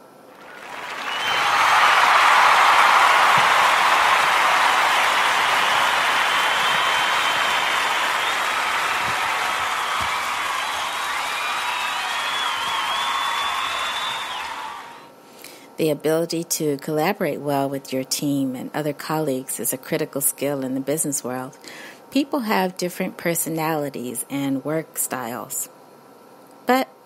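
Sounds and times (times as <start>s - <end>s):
crowd applause: 0.3s - 15.1s
high wavering whistles: 1.0s - 15.1s.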